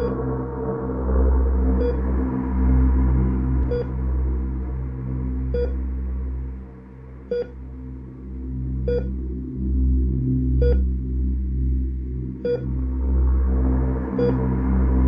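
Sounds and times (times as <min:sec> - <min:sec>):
low droning background: 0:00.0 - 0:15.0
heart monitor beeps: 0:03.7 - 0:03.9, 0:05.6 - 0:05.8, 0:07.3 - 0:07.5, 0:08.9 - 0:09.1, 0:10.6 - 0:10.8, 0:12.5 - 0:12.7, 0:14.2 - 0:14.4.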